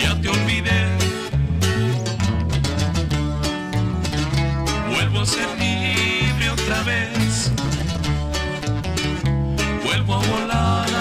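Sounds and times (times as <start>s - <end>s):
acoustic guitar: 0.0s - 11.0s
bajo sexto strumming chords: 0.0s - 11.0s
bass guitar line: 0.0s - 11.0s.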